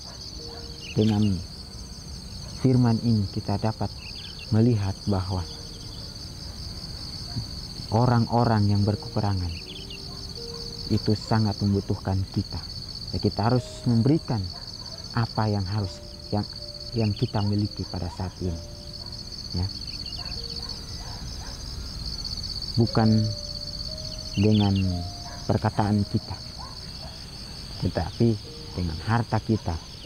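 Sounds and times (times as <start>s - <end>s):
crickets chirping: 0.0s - 30.0s
insects pulsing trill: 0.0s - 30.0s.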